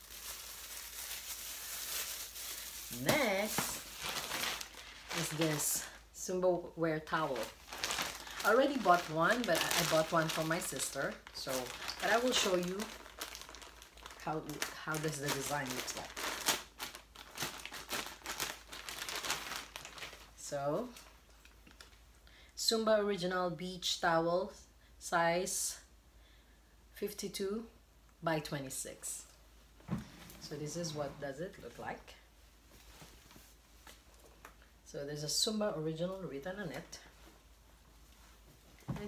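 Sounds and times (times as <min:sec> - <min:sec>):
packaging crinkling: 0:00.0 - 0:06.0, 0:07.1 - 0:22.0
plastic bag rustling: 0:00.0 - 0:06.2, 0:07.0 - 0:22.0.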